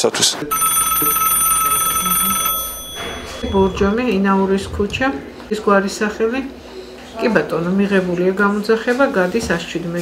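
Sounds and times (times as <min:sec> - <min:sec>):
telephone ringing: 0:00.4 - 0:04.6.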